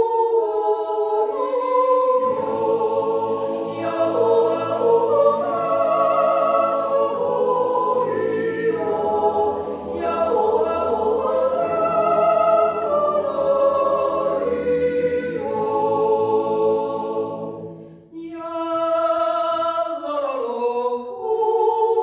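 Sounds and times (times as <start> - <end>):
choir singing a cappella: 0.0 - 22.0.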